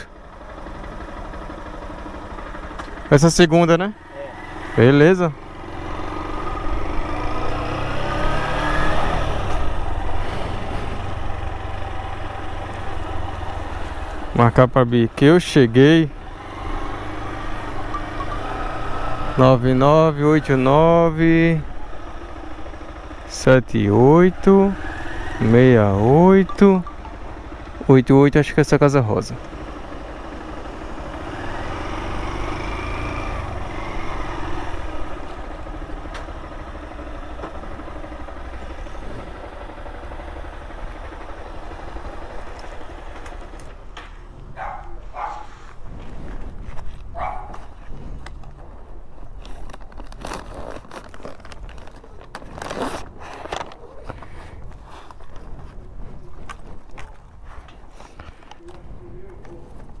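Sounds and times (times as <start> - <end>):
motorcycle engine running: 0.0 - 60.0.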